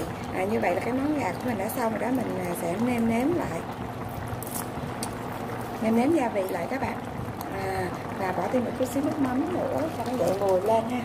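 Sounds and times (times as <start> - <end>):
sauce bubbling in a pot: 0.0 - 11.0.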